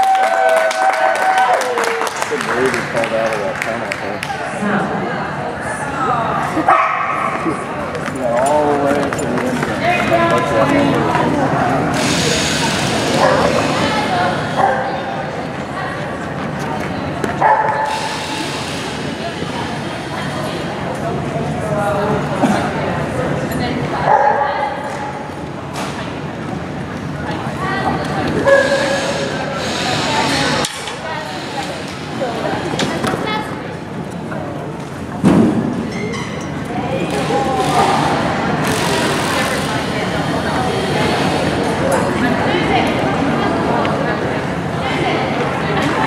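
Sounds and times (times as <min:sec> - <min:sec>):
indoor arena background noise: 0:00.0 - 0:46.0
murmur of voices: 0:00.0 - 0:46.0
dog barking: 0:06.7 - 0:07.4, 0:14.6 - 0:14.9, 0:17.4 - 0:17.9, 0:24.1 - 0:24.6.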